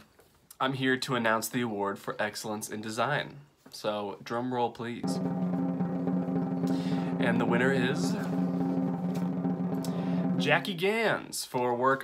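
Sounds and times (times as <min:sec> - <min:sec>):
drum roll: 0:05.0 - 0:11.2.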